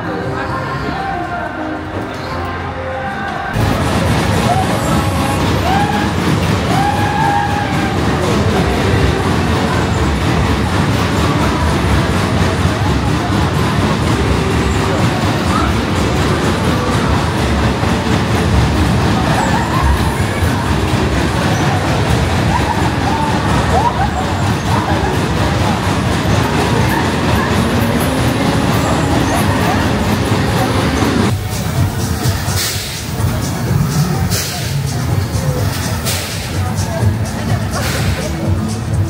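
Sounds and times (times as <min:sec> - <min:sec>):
background music: 0:00.0 - 0:39.0
fairground ride din: 0:00.0 - 0:39.0
voices: 0:00.0 - 0:39.0.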